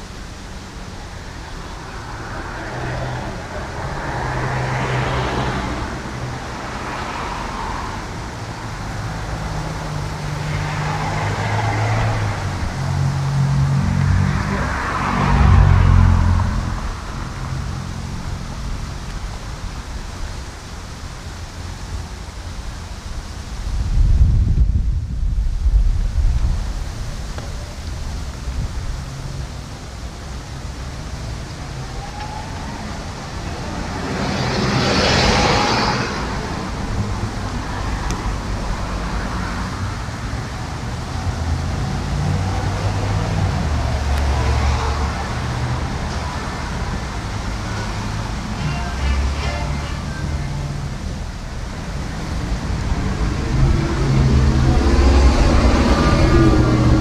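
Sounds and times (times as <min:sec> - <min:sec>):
cars driving past: 0:00.0 - 0:23.7, 0:25.3 - 0:57.0.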